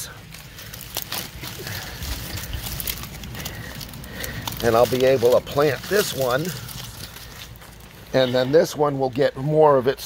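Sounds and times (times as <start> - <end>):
dry leaves rustling and crackling: 0.0 - 10.0.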